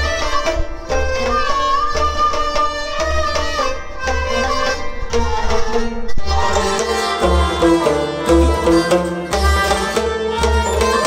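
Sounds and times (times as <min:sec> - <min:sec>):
stringed instrument melody: 0:00.0 - 0:11.0
clay pot drum beaten by hand: 0:06.6 - 0:11.0.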